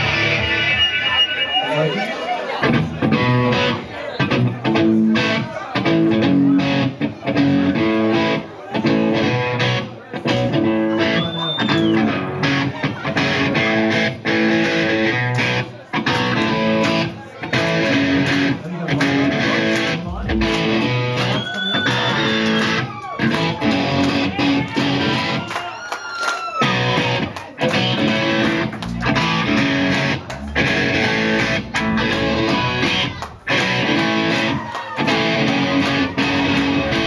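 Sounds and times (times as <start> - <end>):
rock band jamming: 0.0 - 1.7, 2.6 - 25.6, 26.6 - 37.0.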